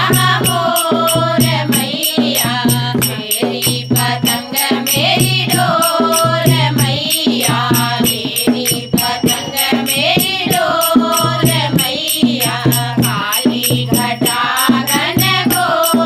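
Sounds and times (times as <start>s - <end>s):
women singing together: 0.0s - 16.0s.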